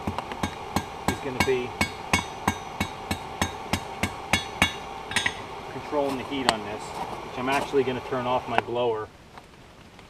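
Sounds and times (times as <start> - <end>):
hammer striking steel on anvil: 0.0 - 5.5.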